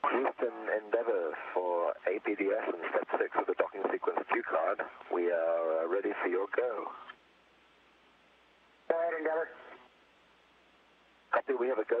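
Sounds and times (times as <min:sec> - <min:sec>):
man speaking over radio: 0:00.0 - 0:07.1, 0:08.9 - 0:09.6, 0:11.3 - 0:12.0
radio line hiss: 0:00.0 - 0:07.2, 0:11.2 - 0:12.0.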